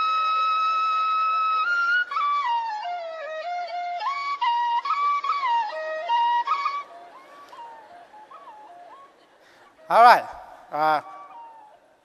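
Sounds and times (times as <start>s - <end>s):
soft flute-like melody: 0.0s - 12.0s.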